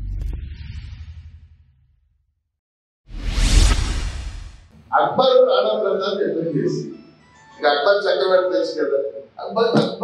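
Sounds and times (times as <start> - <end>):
whoosh with deep bass boom: 3.1 - 4.7
man speaking: 4.9 - 10.0.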